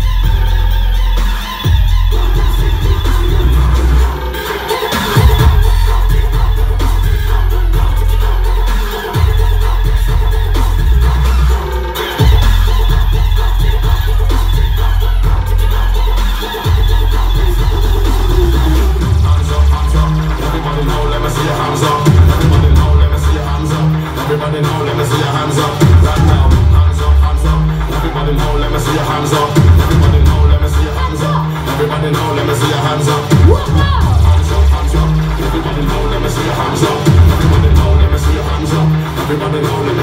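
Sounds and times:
heavy bass line: 0:00.0 - 0:40.0
house dance music: 0:00.0 - 0:40.0.

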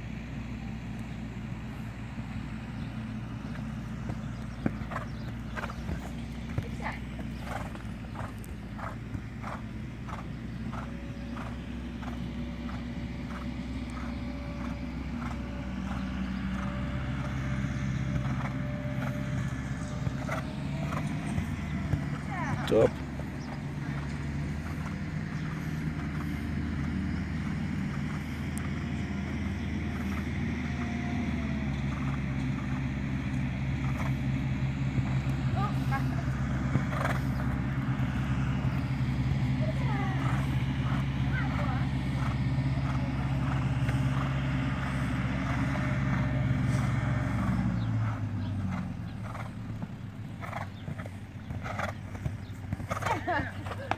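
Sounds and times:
vehicle engine running: 0:00.0 - 0:53.9
horse hoofbeats on sand: 0:03.3 - 0:53.9.

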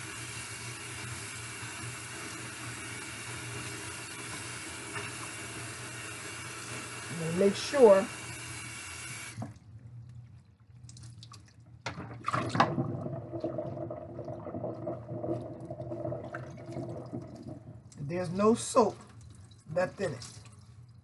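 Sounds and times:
water drips and splashes: 0:09.3 - 0:12.7, 0:13.6 - 0:21.0.

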